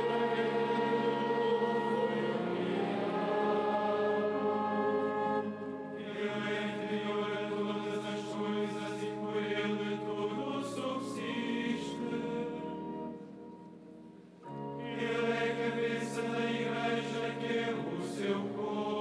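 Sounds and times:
voices chanting liturgy: 0:00.0 - 0:13.3, 0:14.8 - 0:19.0.

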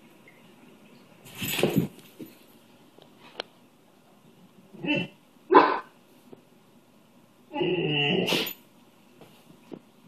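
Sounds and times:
dog barking: 0:05.5 - 0:05.9.

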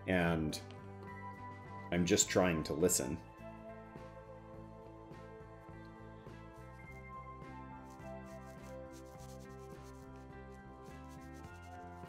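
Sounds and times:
soft background music: 0:00.0 - 0:12.0
paintbrush stroking paper: 0:06.6 - 0:07.2, 0:07.8 - 0:12.0.

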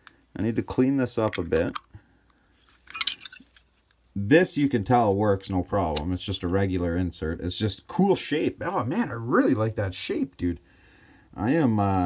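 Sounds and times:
metallic clinks and scraping: 0:02.6 - 0:03.8.

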